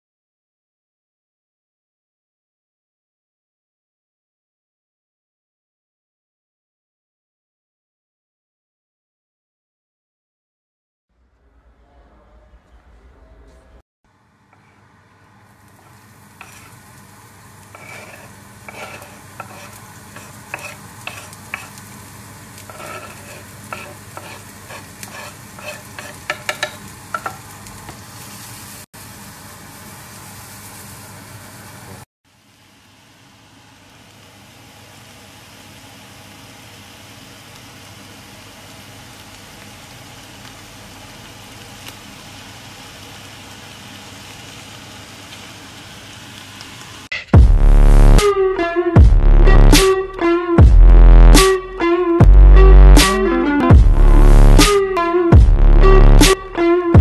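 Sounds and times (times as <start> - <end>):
onions sizzling in a frying pan: 15.3 - 47.1
utensil scraping a pan: 16.4 - 16.8, 17.6 - 21.9, 22.6 - 27.4
utensil knocking against pan: 26.2 - 27.4.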